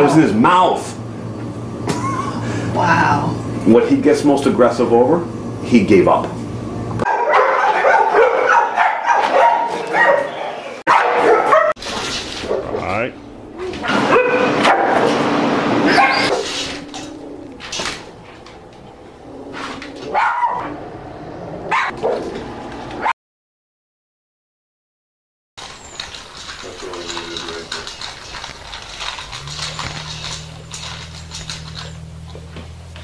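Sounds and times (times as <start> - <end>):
dog barking: 7.0 - 11.8, 13.6 - 15.1, 15.9 - 16.4, 20.1 - 20.8, 21.7 - 22.2.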